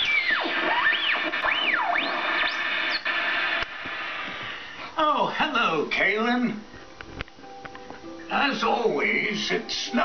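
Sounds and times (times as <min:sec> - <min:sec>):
synthesized music with swooping tones: 0:00.0 - 0:03.5.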